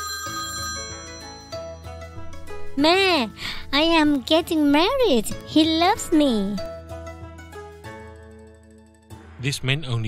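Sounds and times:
telephone ringing: 0.0 - 1.9
light background music: 0.0 - 10.0.

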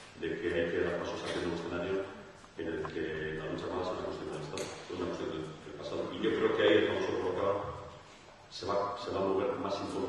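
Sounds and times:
man talking into microphone: 0.0 - 10.0.

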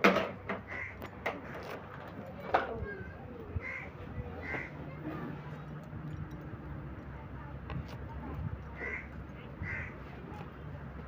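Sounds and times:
crow cawing: 0.7 - 1.0, 3.6 - 4.8, 8.8 - 10.0.

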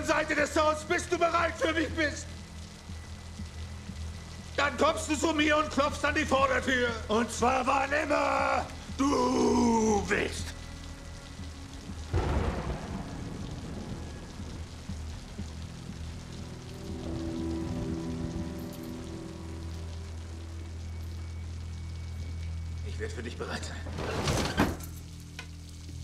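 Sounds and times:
low sustained music score: 0.0 - 23.9
steady rain falling: 0.0 - 26.0
thunder rumble: 10.4 - 22.5.

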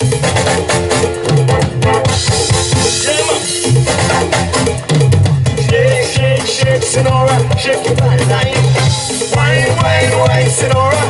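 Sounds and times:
electric bass line: 0.0 - 11.0
live band playing: 0.0 - 11.0.

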